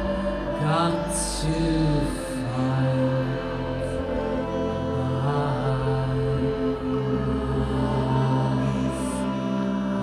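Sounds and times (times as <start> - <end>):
layered electronic drone: 0.0 - 10.0
theremin music: 0.0 - 10.0.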